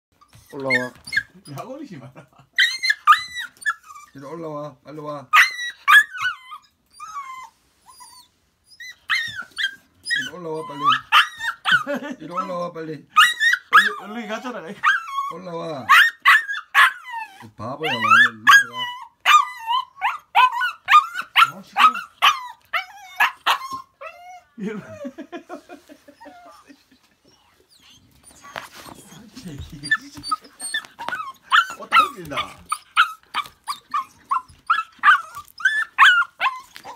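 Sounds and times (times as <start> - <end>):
puppy whining: 0.1 - 4.4, 5.3 - 36.9.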